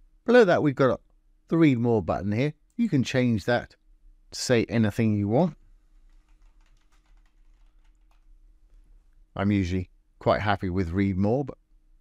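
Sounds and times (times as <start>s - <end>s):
typing on computer keyboard: 5.9s - 8.3s.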